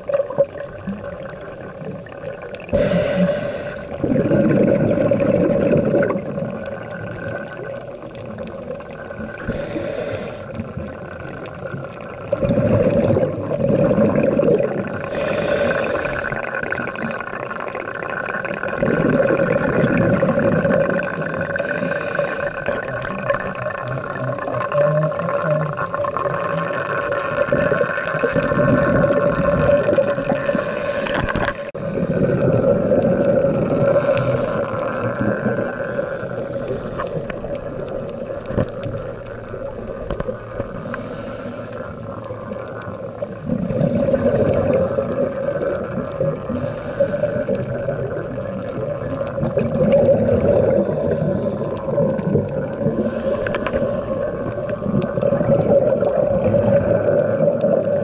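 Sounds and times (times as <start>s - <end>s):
exhaled bubbles rumbling: 0.0s - 58.0s
regulator inhalation hiss: 2.4s - 4.0s, 9.4s - 10.6s, 14.9s - 16.6s, 21.5s - 22.8s, 30.3s - 32.2s, 33.8s - 35.0s, 40.7s - 42.2s, 46.4s - 47.8s, 52.8s - 54.9s.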